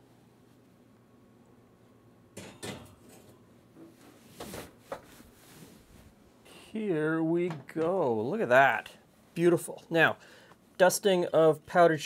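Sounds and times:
skillet clanking on wire rack: 2.4 - 3.3.

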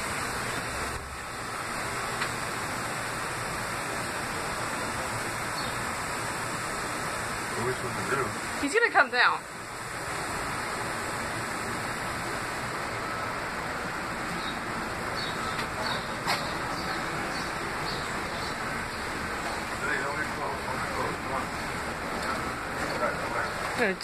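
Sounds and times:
steady rushing noise: 0.0 - 24.0.

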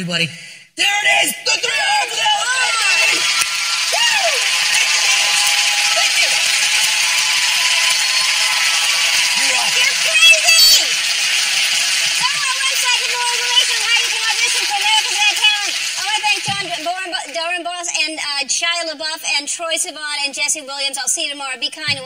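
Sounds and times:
whoops and shouts: 1.0 - 11.2
audience applauding and cheering: 1.0 - 18.1.

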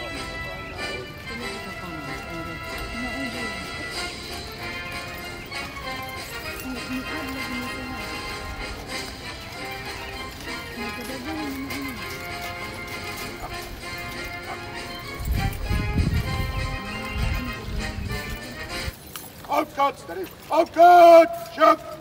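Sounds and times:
steady music: 0.0 - 19.0
hooves stamping on gravel: 0.0 - 22.0
voices: 0.0 - 22.0.

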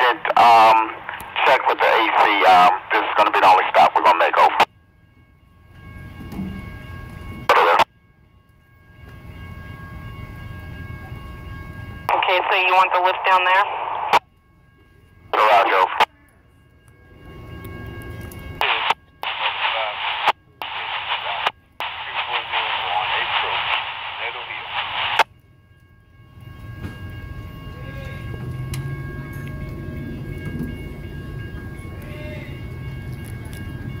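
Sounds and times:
radio transmission over scanner: 0.0 - 4.7, 7.5 - 7.9, 12.1 - 14.2, 15.3 - 16.1, 18.6 - 25.3.

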